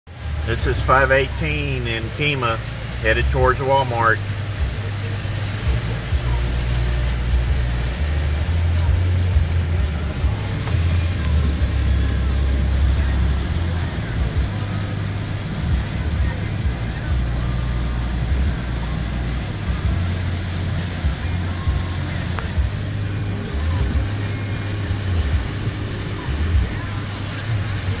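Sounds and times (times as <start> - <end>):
car rumbling underway: 0.1 - 28.0
hiss of water and rain: 0.1 - 28.0.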